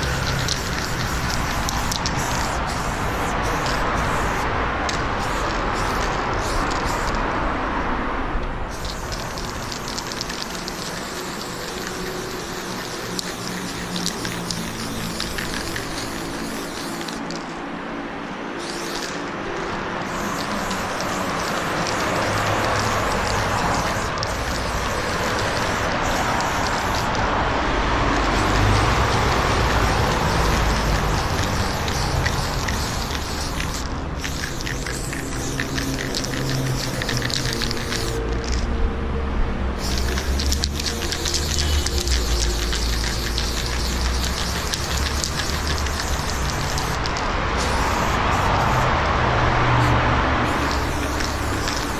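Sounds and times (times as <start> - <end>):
aerosol spray can hissing: 0.0 - 7.2, 8.7 - 17.4, 18.6 - 27.3, 28.2 - 38.6, 39.8 - 48.9, 50.4 - 51.9.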